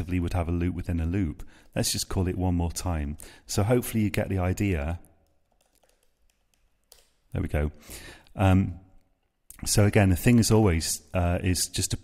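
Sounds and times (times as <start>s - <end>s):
computer keyboard keystrokes: 5.2s - 7.2s.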